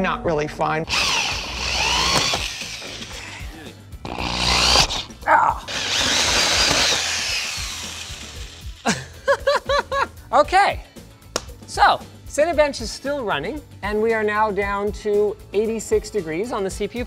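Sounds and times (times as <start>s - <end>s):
drill with hole saw cutting metal: 0.9s - 8.8s.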